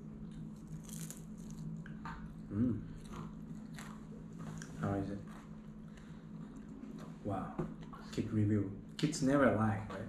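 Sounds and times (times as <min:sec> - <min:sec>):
child chewing crisp food: 0:00.0 - 0:07.2
low steady hum: 0:00.0 - 0:10.0.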